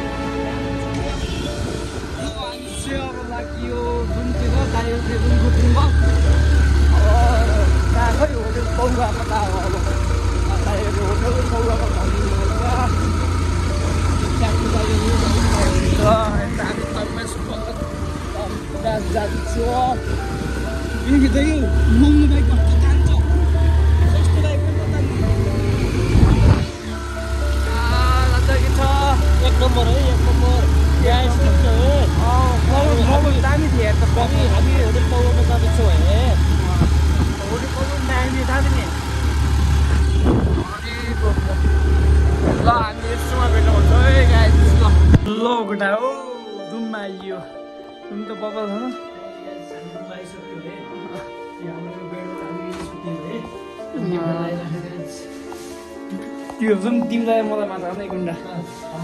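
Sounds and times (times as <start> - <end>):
music: 0.0 - 59.0
wind rumble on microphone: 26.0 - 26.8, 36.7 - 37.5, 40.1 - 41.6, 42.2 - 42.8.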